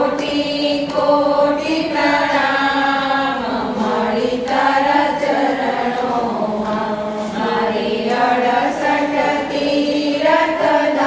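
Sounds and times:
women chanting in unison: 0.0 - 11.0.

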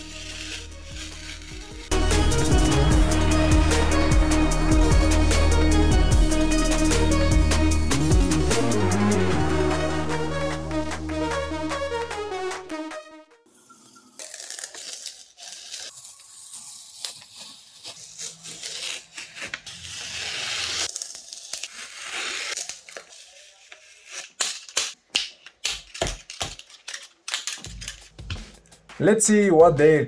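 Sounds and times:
masking tape peeling off paper: 0.0 - 1.9, 13.9 - 25.0.

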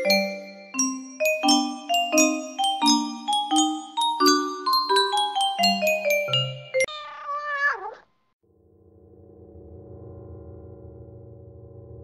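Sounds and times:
cat meowing: 6.9 - 8.2
low steady drone: 8.5 - 12.0.

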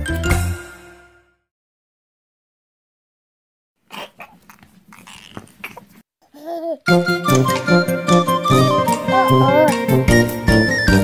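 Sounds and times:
music: 0.0 - 1.5, 6.9 - 11.0
child whimpering: 5.0 - 6.8, 8.9 - 10.0
toddler babbling: 5.0 - 6.9, 8.9 - 10.0.

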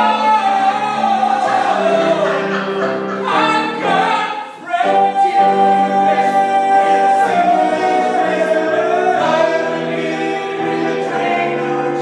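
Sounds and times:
vocal trio singing: 0.0 - 12.0.

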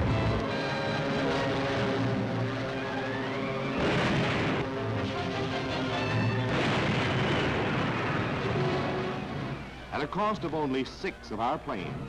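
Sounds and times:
propeller aircraft engines droning: 0.0 - 12.0.

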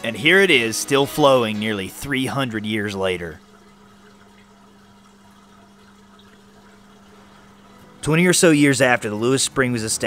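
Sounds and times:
low steady hum: 0.0 - 10.0
water trickling into stone basin: 0.0 - 10.0.

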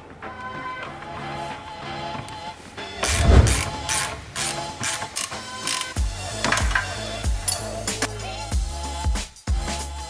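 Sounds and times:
background music with a beat: 0.0 - 10.0
socket ratchet clicking: 3.9 - 6.0.

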